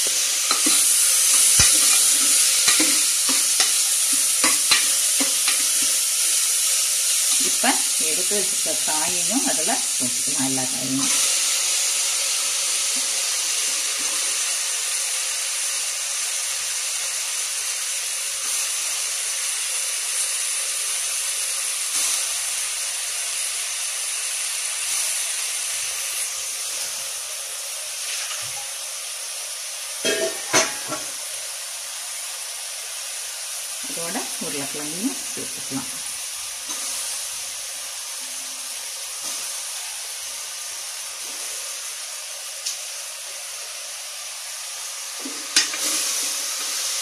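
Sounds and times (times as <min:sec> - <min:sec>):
vegetables sizzling in hot oil: 0:00.0 - 0:47.0.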